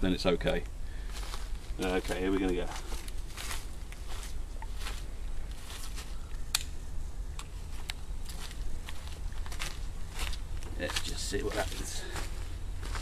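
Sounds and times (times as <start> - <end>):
steady low rumble: 0.0 - 13.0
footsteps crunching on dry leaves: 1.0 - 6.3, 7.6 - 13.0
twig snap: 6.3 - 8.0.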